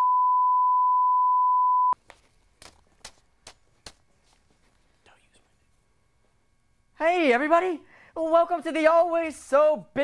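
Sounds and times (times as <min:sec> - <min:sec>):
paper rustling: 0:02.0 - 0:05.0.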